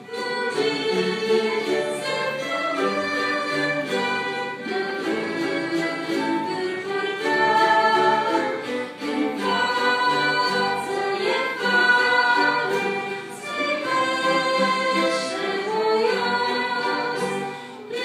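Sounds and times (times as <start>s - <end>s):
choir singing: 0.0s - 18.0s
orchestra playing: 0.0s - 18.0s
singers breathing: 17.5s - 17.9s.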